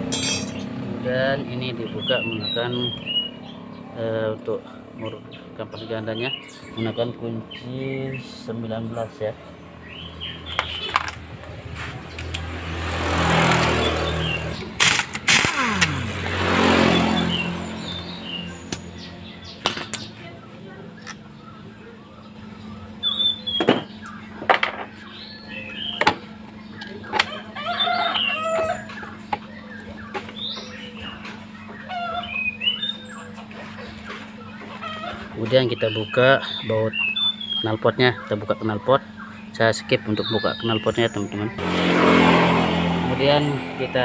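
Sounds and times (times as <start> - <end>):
birds chirping: 0.0 - 44.0
metal clinks and knocks: 0.1 - 0.7.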